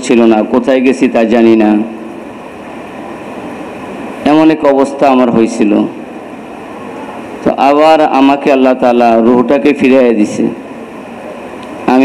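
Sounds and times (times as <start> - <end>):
steady hiss-like background noise: 0.0 - 12.0.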